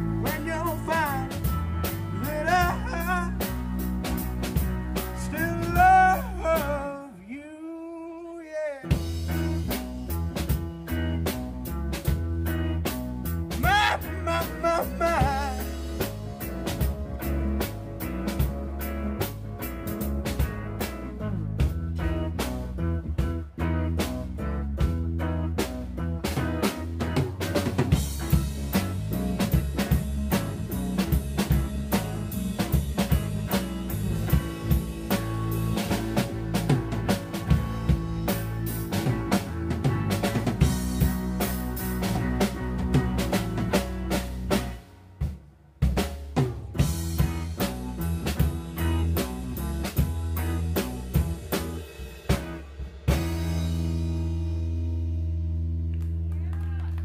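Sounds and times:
drum kit: 0.0 - 7.0, 8.8 - 56.3
electric bass: 0.0 - 7.2, 8.8 - 57.0
electric guitar: 0.0 - 7.2, 8.8 - 57.0.

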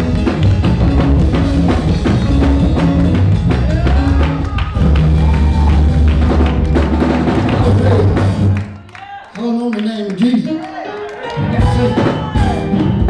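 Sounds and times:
band music with drums and bass: 0.0 - 8.8, 11.2 - 13.0.

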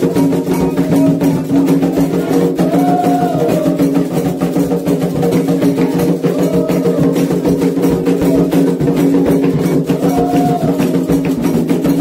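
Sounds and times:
hand drums playing: 0.0 - 12.0
group singing: 0.5 - 4.6, 5.5 - 7.6, 8.2 - 11.4.

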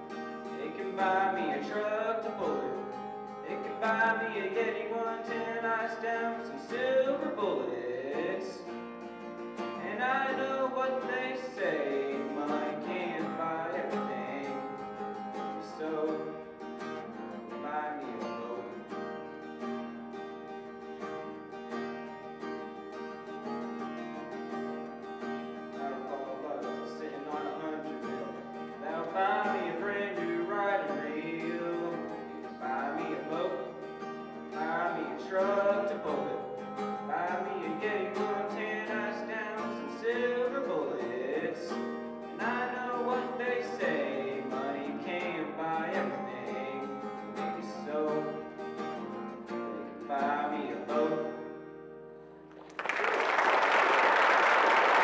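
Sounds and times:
acoustic guitar: 0.0 - 55.0.

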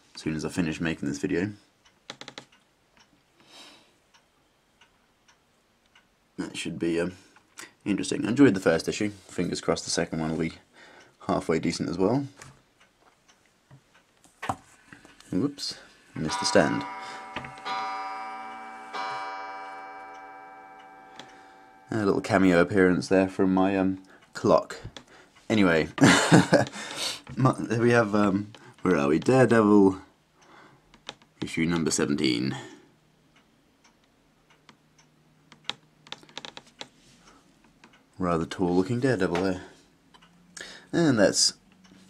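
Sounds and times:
clock chiming: 15.7 - 23.9.

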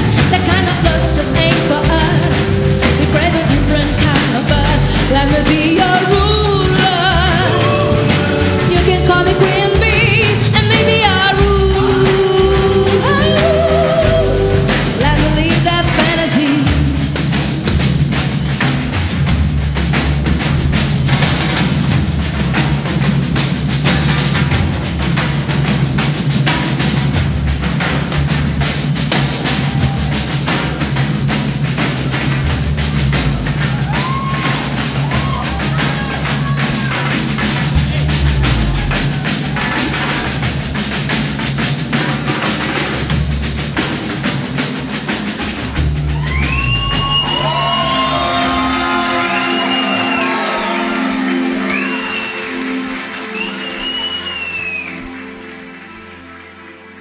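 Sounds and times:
held keyboard chords: 0.0 - 17.2
fast snare drumming: 0.0 - 55.2
live band playing: 0.0 - 57.0.

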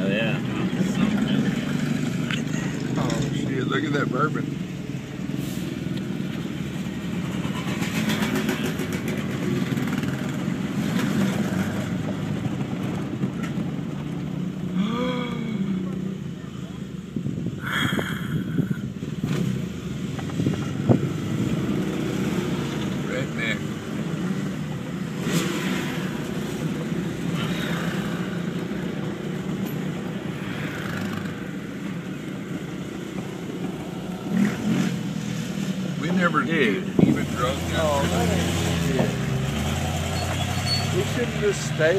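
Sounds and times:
tyre and cab rumble: 0.0 - 41.9.

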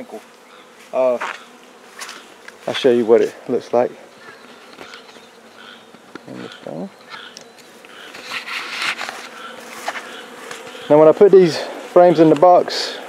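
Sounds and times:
honey bees buzzing: 0.0 - 13.0
rustling: 4.0 - 11.0.

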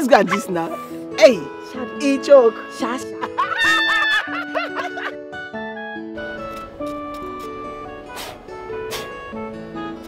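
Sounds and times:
background music with held notes: 0.0 - 10.0
women laughing: 3.0 - 5.3.

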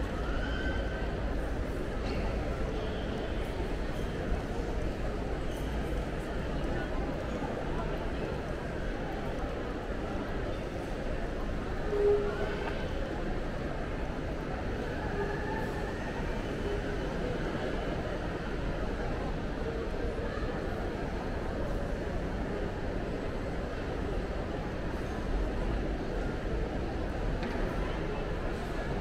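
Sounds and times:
busy shopping mall rumble: 0.0 - 29.0.

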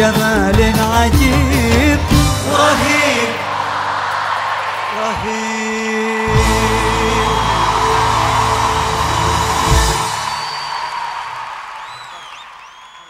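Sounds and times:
audience cheering: 2.5 - 13.0
whistles from audience: 6.3 - 13.0.

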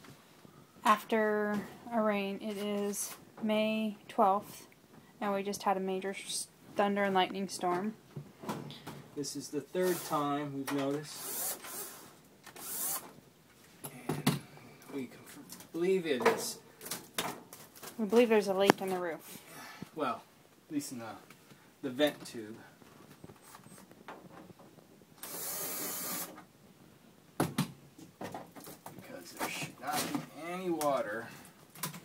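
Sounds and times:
cordless drill running: 9.8 - 10.2, 11.2 - 12.0, 12.6 - 13.1, 25.2 - 26.4.

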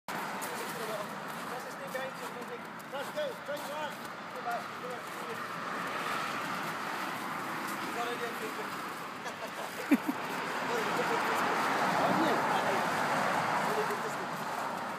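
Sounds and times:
road traffic noise: 0.1 - 14.9.

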